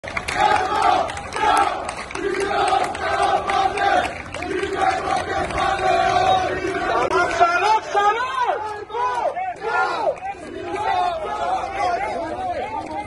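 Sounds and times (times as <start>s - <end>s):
crowd chanting in unison: 0.3s - 12.4s.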